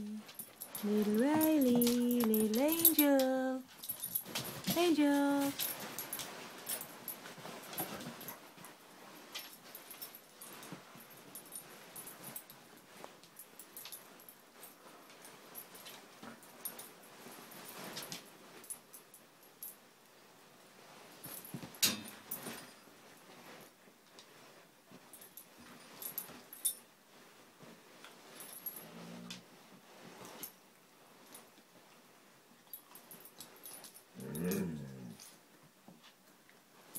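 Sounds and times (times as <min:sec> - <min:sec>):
puppies scuffling: 0:00.3 - 0:13.2.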